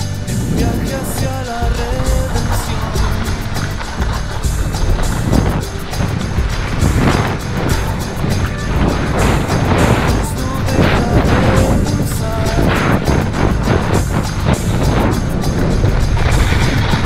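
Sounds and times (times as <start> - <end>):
song with heavy bass beat: 0.0 - 17.0.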